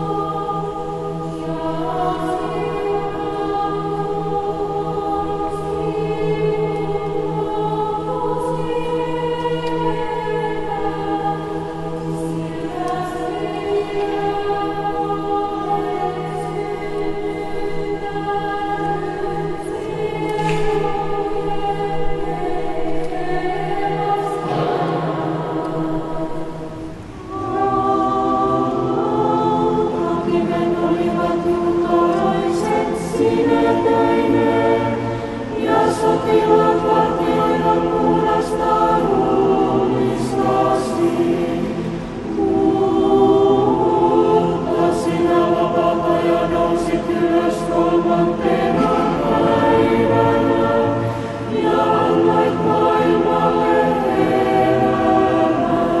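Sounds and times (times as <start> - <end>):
choir singing unaccompanied: 0.0 - 56.0.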